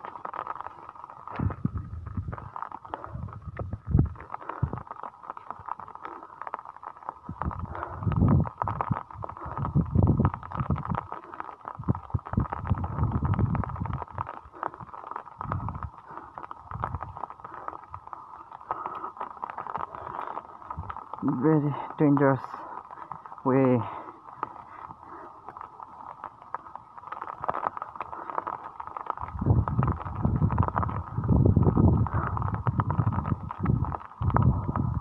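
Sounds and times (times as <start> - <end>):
wind buffeting microphone: 1.3 - 4.9, 7.2 - 25.6, 26.2 - 35.0.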